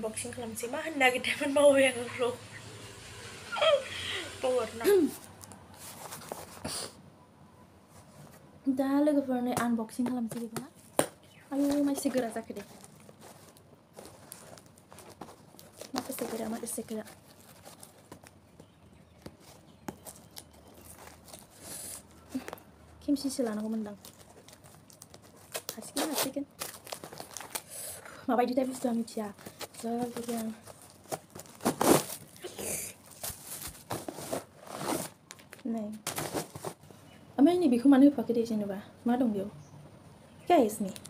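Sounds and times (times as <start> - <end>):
fingers picking at paper and tape: 10.4 - 22.7, 23.3 - 32.4
plastic wrapping crinkling: 10.4 - 36.9
packing tape ripping off cardboard: 23.9 - 28.0, 29.3 - 36.8.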